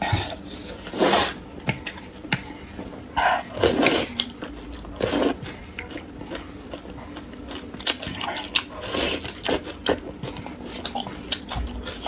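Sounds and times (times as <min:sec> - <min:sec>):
wet chewing and slurping: 0:03.6 - 0:12.0.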